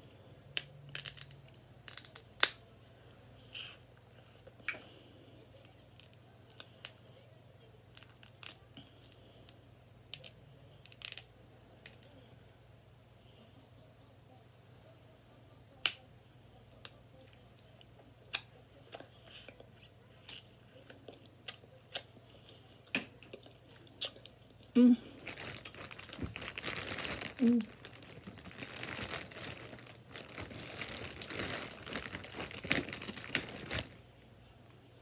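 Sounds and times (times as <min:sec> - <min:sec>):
faint low hum: 0:00.0 - 0:35.0
seafood shells cracking: 0:00.9 - 0:02.6, 0:25.3 - 0:34.0.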